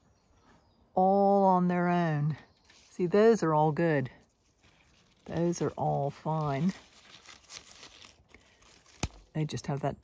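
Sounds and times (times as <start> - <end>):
leaves and twigs rustling: 2.2 - 10.0.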